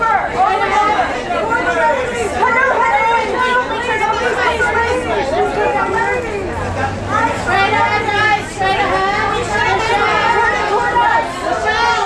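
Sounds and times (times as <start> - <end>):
babble of voices: 0.0 - 12.0.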